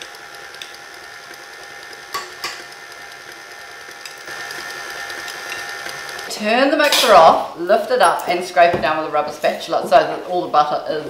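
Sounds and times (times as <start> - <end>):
stand mixer motor whining: 0.0 - 6.3.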